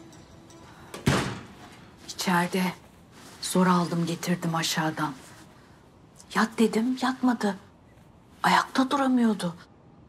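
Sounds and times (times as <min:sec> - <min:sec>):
door shutting with a thud: 0:01.0 - 0:01.6.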